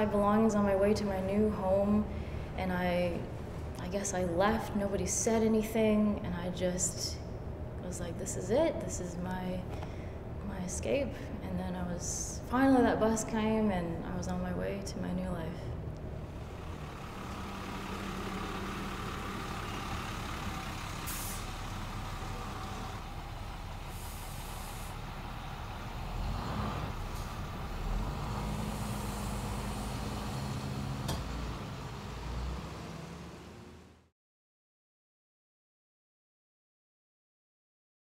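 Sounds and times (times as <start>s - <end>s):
bus engine running: 16.0s - 34.1s
air brakes hissing: 20.9s - 21.6s, 23.8s - 25.1s, 28.4s - 30.7s.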